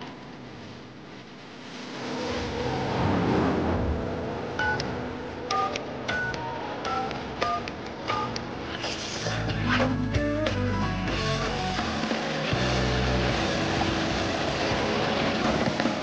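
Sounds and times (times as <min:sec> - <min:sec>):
background music: 0:03.8 - 0:16.0
telephone keypad beeps: 0:05.5 - 0:08.4.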